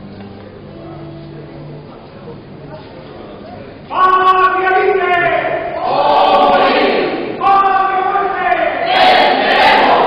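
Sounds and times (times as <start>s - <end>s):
mixed choir singing chords: 5.7s - 7.4s, 8.8s - 10.0s.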